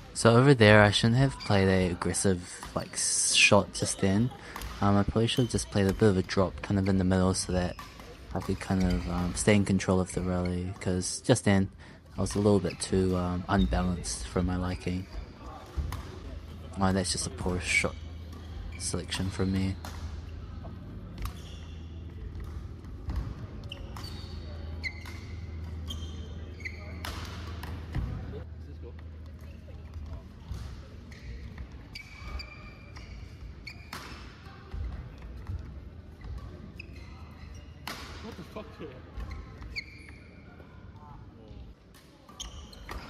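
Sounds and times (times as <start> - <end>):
shoes squeaking on court floor: 0.6 - 43.0.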